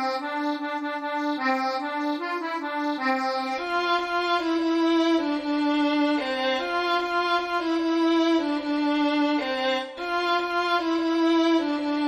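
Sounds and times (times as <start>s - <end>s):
synthesized accordion melody: 0.0s - 12.0s
synthesized violin: 0.0s - 12.0s.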